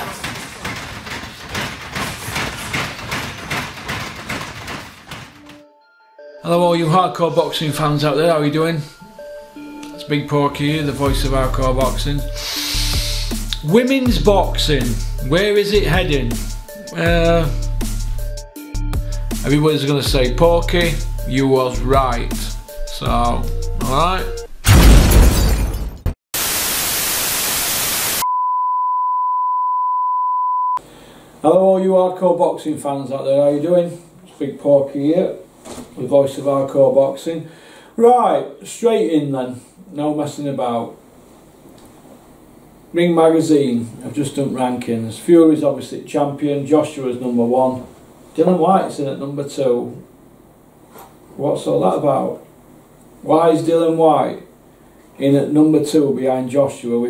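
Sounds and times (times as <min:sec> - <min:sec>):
television static hiss: 0:26.4 - 0:28.2.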